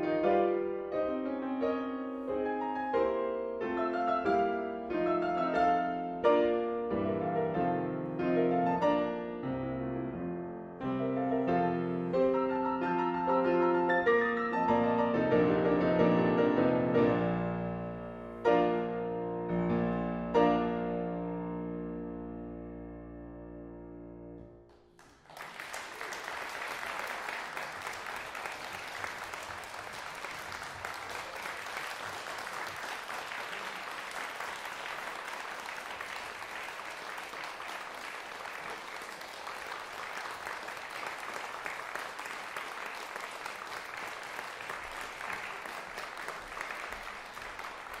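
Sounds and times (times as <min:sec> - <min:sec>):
audience applauding: 0:24.7 - 0:48.0.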